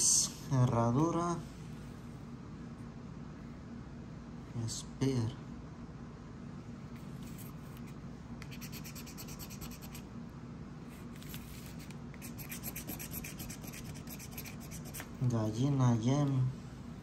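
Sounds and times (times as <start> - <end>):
scratch-off ticket being scratched: 7.2 - 10.0, 11.2 - 15.1.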